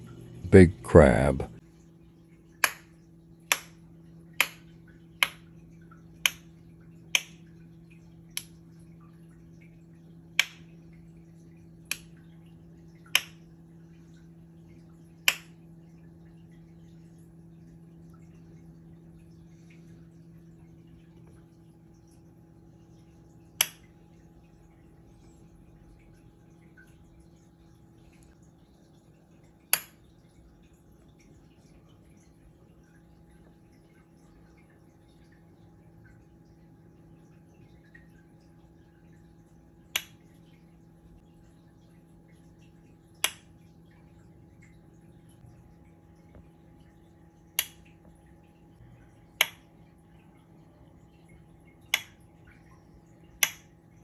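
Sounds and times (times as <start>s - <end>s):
steady low hum: 0.0s - 54.0s.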